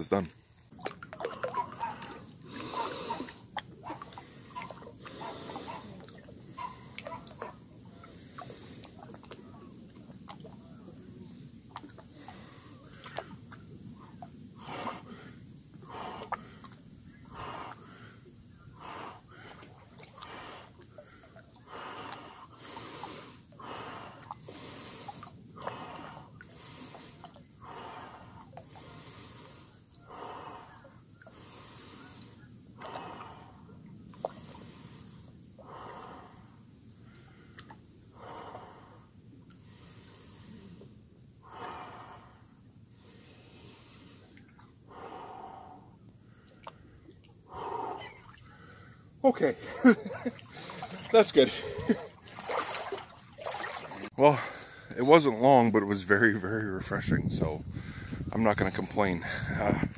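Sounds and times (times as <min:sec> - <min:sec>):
man breathing heavily: 0:01.2 - 0:07.0, 0:08.0 - 0:09.2, 0:14.6 - 0:52.9, 0:53.5 - 0:55.0, 0:57.6 - 0:58.3.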